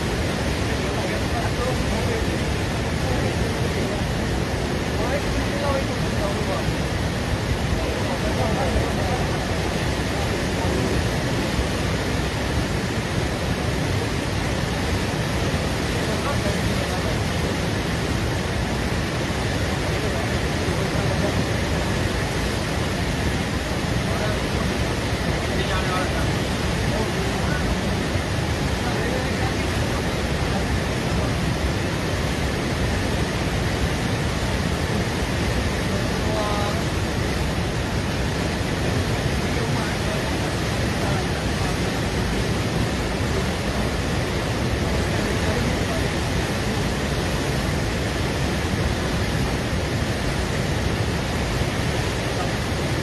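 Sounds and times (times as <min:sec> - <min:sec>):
faint voices: 0:00.0 - 0:53.0
roar of rushing water: 0:00.0 - 0:53.0.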